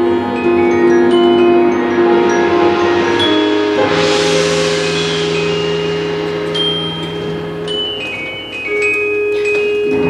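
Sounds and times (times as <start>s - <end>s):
held low orchestral note: 0.0s - 8.9s
high bell-like notes: 0.0s - 10.0s
metal percussion crash: 0.3s - 9.3s.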